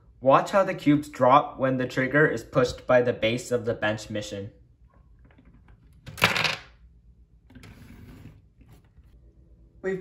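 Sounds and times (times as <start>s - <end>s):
plastic sliding scrape: 7.5s - 9.2s.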